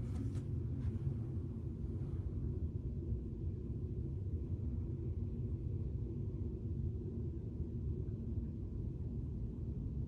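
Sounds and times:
faint even hum: 0.0s - 10.0s.

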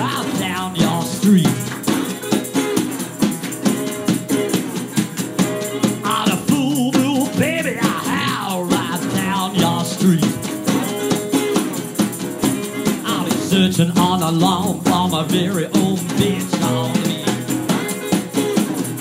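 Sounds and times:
blues resonator guitar: 0.0s - 19.0s
hand percussion: 0.0s - 19.0s.

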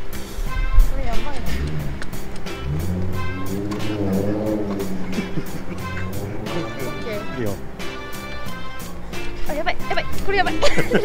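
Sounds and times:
background music with steady beat: 0.0s - 11.0s
motorcycle engine revving: 0.8s - 8.7s.

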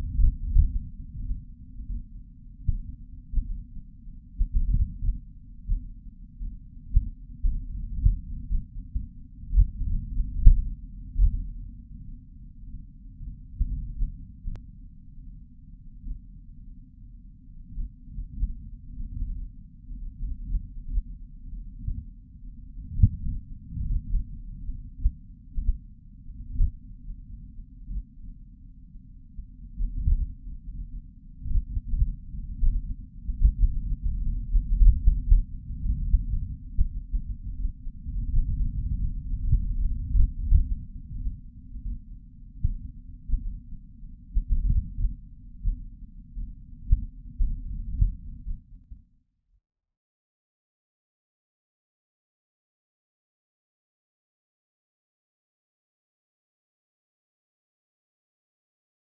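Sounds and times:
deep muffled rumble: 0.0s - 11.9s, 29.4s - 49.0s.

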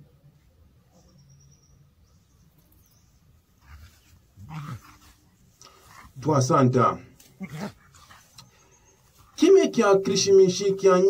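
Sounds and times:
dog vocalizing: 3.6s - 6.1s, 7.4s - 8.4s.

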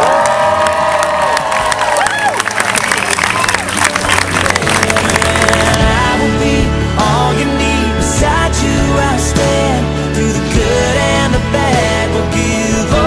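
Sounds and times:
person whooping: 0.0s - 3.7s
guests cheering and applauding: 0.0s - 6.3s
music: 1.4s - 13.0s.

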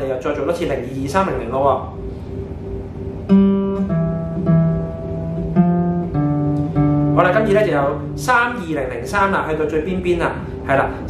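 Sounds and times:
acoustic guitar melody: 1.5s - 11.0s.

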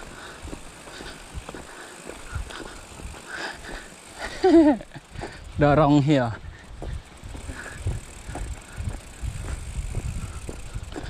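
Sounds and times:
bike clicks and rattles: 0.0s - 11.0s.

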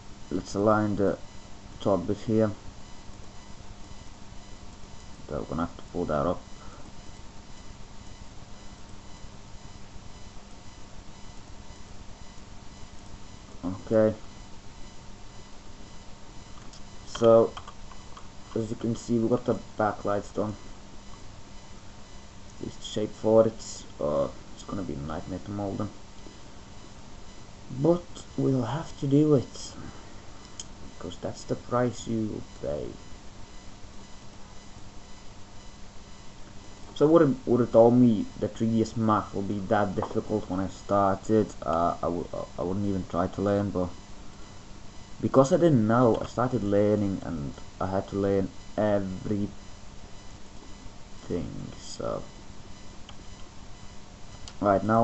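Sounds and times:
faint electrical tones: 0.0s - 55.0s
microphone hiss: 0.0s - 55.0s.

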